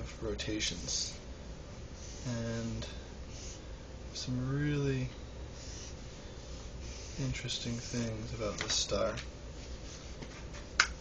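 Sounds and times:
low steady hum: 0.0s - 11.0s
pencil scratching on paper: 5.6s - 8.2s.

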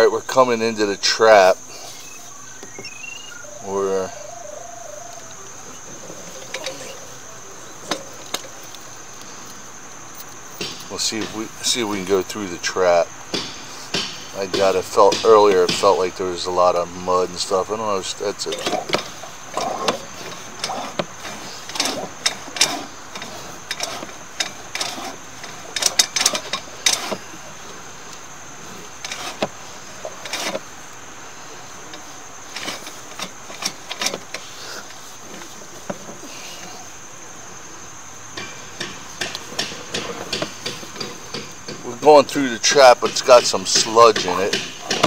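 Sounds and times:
steady high hiss: 0.0s - 45.0s.

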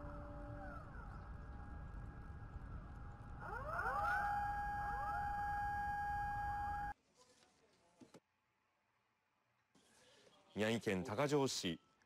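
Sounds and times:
faint low rumble: 0.0s - 3.8s
sirens wailing: 0.0s - 6.9s.

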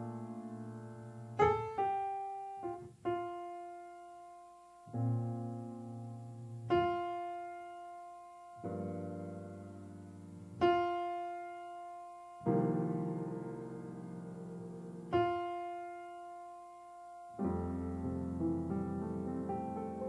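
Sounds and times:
slow solo grand piano: 0.0s - 20.0s.

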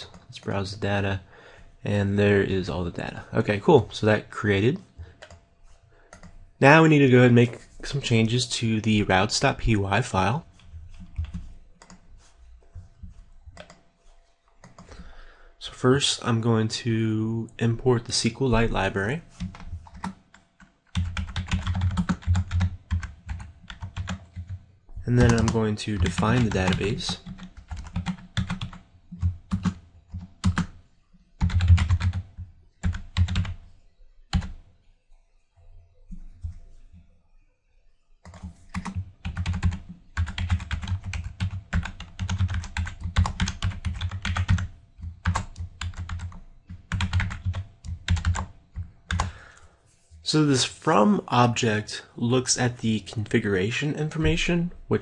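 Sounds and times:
typing on computer keyboard: 5.2s - 5.4s, 6.1s - 6.4s, 10.9s - 12.0s, 13.6s - 13.8s, 14.6s - 15.0s, 19.4s - 24.6s, 25.2s - 30.8s, 31.4s - 33.6s, 38.2s - 49.4s.

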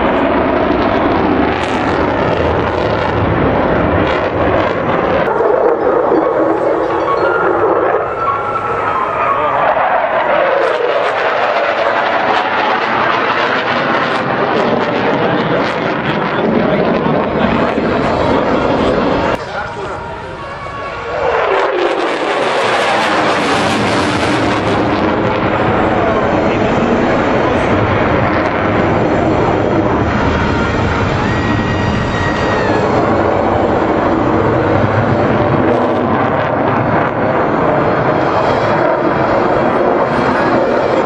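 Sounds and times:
jet engine passing: 0.0s - 41.0s.

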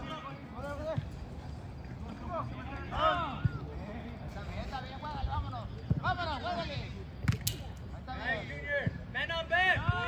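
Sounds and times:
ball being kicked: 7.2s - 7.6s.

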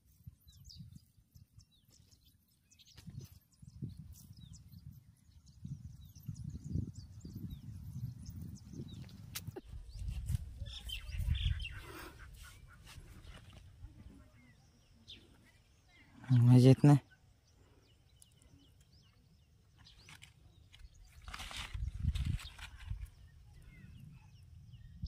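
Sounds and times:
birds chirping: 0.1s - 25.0s
hands scraping dry soil: 19.8s - 23.3s.

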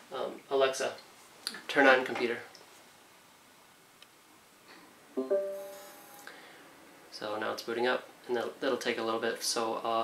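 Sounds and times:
smart speaker two-note chime: 5.2s - 6.1s.

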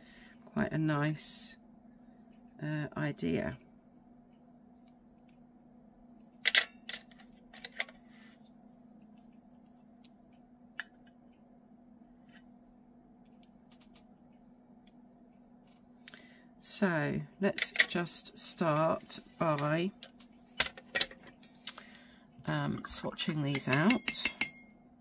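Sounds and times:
faint steady hum: 0.0s - 25.0s
metal tubes clicking and tapping: 23.4s - 24.8s.

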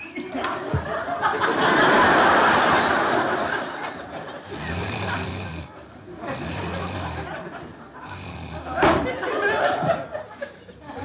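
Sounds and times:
man snoring loudly: 4.4s - 8.9s, 10.8s - 11.0s.

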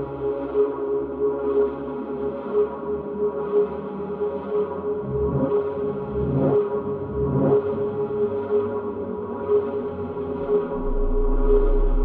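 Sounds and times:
ambient drone: 0.0s - 12.0s
deep rumbling swells: 10.7s - 12.0s.

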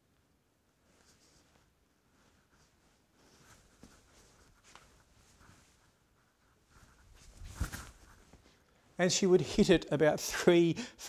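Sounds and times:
clothing and shoes rustling: 0.8s - 9.0s.

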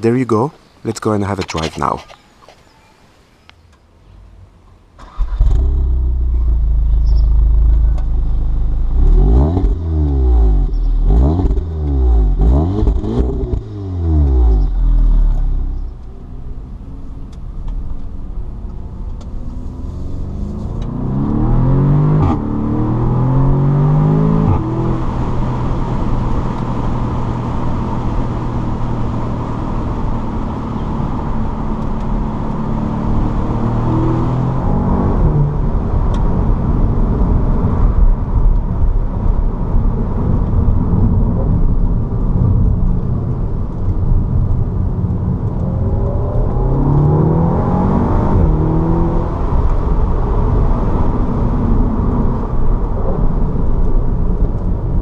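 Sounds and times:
road noise: 0.0s - 55.0s
car engine accelerating: 4.1s - 38.7s, 40.2s - 55.0s
car engine revving: 4.2s - 17.3s, 18.3s - 36.8s, 45.2s - 53.0s.

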